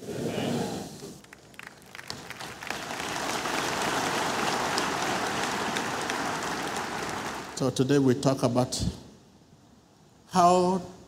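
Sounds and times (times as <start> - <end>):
crowd applauding: 1.2 - 7.8.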